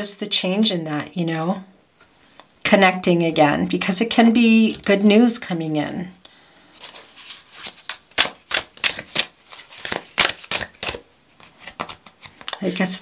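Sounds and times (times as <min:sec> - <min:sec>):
cards being shuffled: 0:06.8 - 0:13.0.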